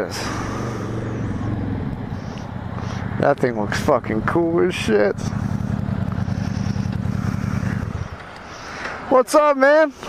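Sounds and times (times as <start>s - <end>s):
motorcycle engine idling: 0.0s - 9.0s.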